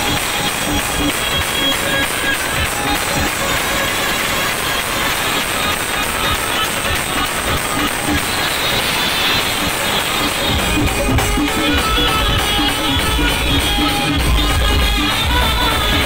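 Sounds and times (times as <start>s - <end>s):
brass band music: 0.0s - 16.0s
electronic drum pads beat: 0.0s - 16.0s.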